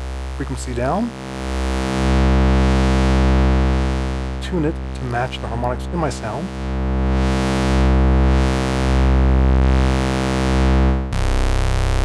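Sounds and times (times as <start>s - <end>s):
low synthesizer tone with phasing: 0.0s - 12.0s.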